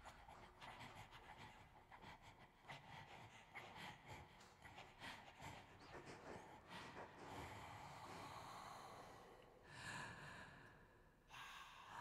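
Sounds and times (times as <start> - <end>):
soft breathy sounds: 0.0 - 12.0.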